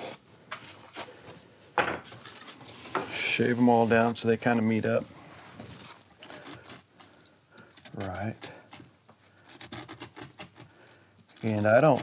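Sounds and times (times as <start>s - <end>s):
chisel scraping wood: 5.9s - 10.7s, 11.3s - 12.0s.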